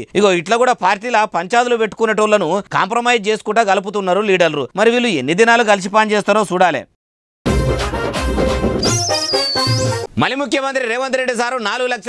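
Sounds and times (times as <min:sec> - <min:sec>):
music jingle with heavy bass: 0:07.5 - 0:10.1
high wavering tone: 0:08.8 - 0:10.1.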